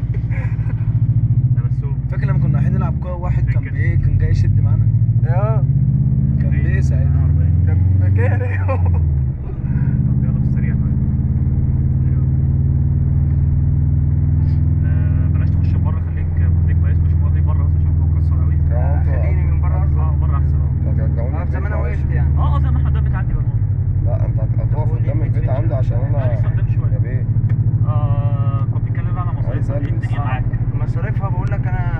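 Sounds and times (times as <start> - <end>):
car engine running: 0.0 - 31.9.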